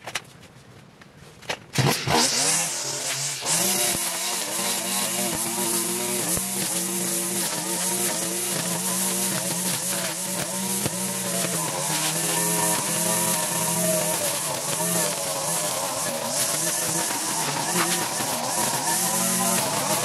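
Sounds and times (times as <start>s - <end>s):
petrol string trimmer running: 1.8s - 20.0s.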